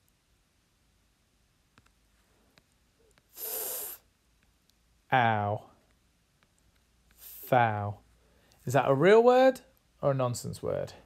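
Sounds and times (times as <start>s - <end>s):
person sniffing sharply: 3.3s - 4.1s, 7.2s - 7.5s.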